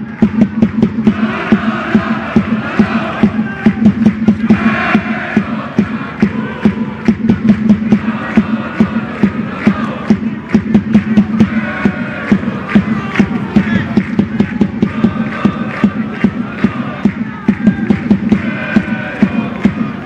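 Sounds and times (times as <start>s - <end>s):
crowd chanting in unison: 0.0s - 20.0s
steady drum beat: 0.0s - 20.0s.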